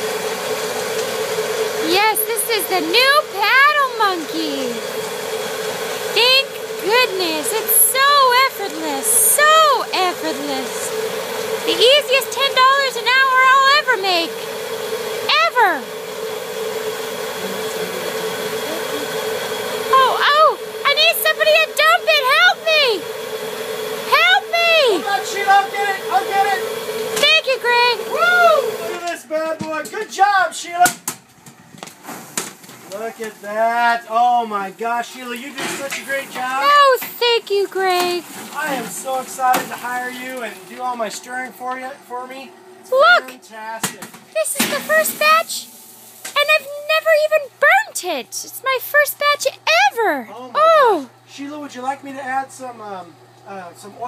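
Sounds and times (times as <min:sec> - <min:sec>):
machine mechanical hum: 0:00.0 - 0:54.0.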